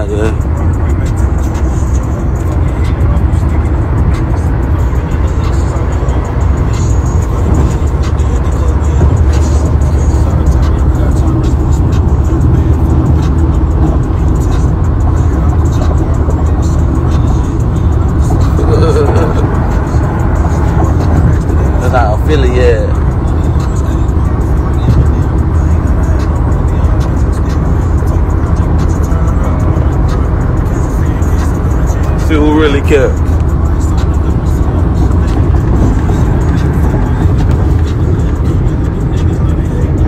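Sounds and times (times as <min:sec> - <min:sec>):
car rumble from inside: 0:00.0 - 0:40.0
rap music on car stereo: 0:00.0 - 0:40.0.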